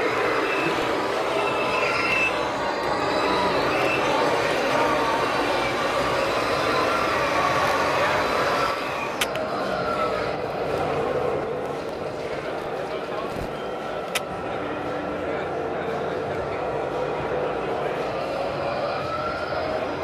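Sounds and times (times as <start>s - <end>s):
simulated engine noise: 0.0s - 19.0s.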